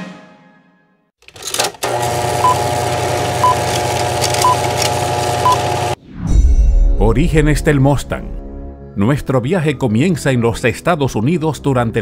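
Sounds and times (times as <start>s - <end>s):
mechanical running noise: 1.2s - 6.0s.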